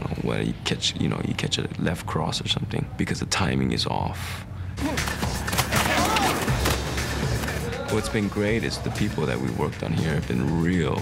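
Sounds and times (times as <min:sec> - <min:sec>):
background music: 0:04.6 - 0:11.0.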